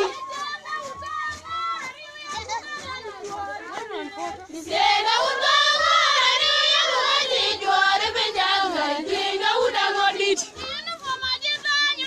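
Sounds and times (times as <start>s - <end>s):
chatter: 0.0s - 12.0s
women singing call-and-response: 0.0s - 12.0s.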